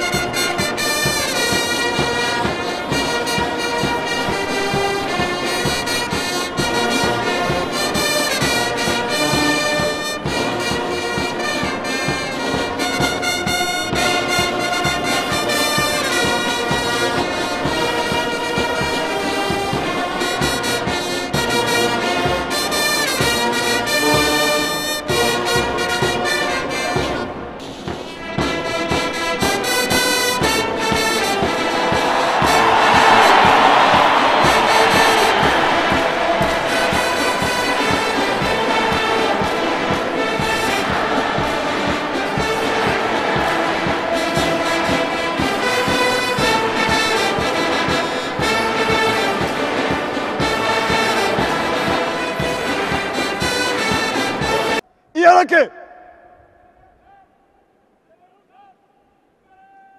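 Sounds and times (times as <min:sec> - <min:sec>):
brass band playing a march: 0:00.0 - 0:55.4.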